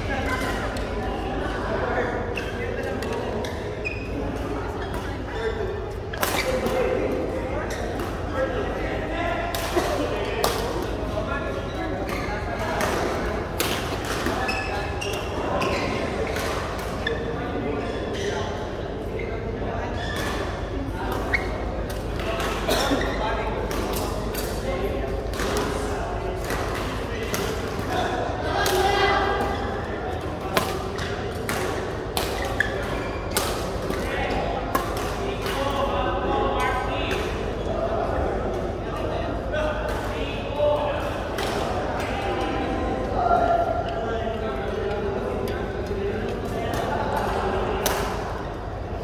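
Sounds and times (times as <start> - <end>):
faint voices talking: 0.0 - 49.0.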